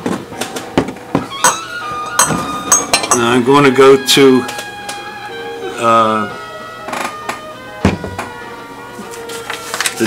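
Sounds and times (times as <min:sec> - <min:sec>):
soft sustained background music: 0:00.4 - 0:10.0
knocks and clicks of objects handled: 0:07.3 - 0:08.4.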